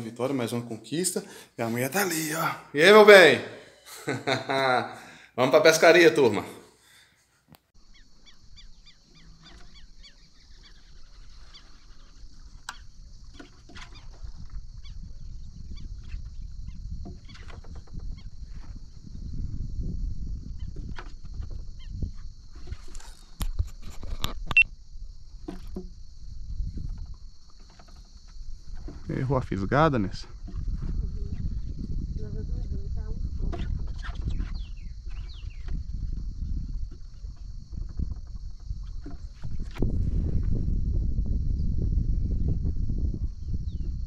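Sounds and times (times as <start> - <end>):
bird calls: 7.8 - 15.1, 33.6 - 35.8
wind rumble on microphone: 8.3 - 44.0.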